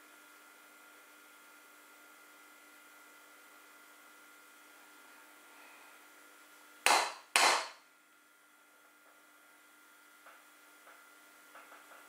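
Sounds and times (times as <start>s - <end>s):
sharp knocks: 6.9s - 7.8s.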